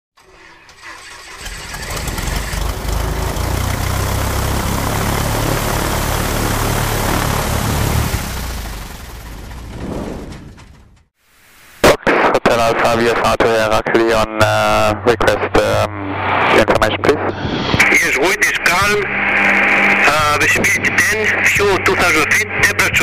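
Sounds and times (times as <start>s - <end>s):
engine running: 0.2s - 11.1s, 17.5s - 23.0s.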